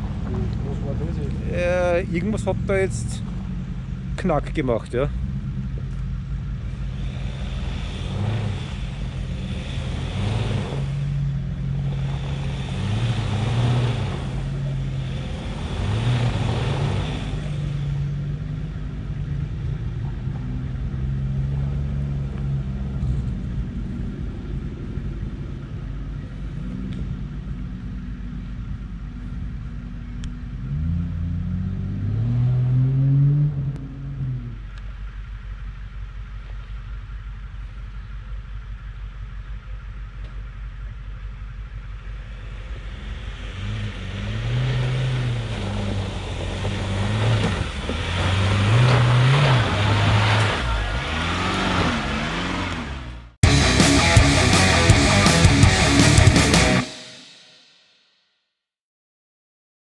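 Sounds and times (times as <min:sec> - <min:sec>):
truck engine revving under load: 0:00.0 - 0:24.4, 0:30.2 - 0:34.8, 0:42.2 - 0:57.0
tyres on loose ground: 0:34.6 - 0:56.8.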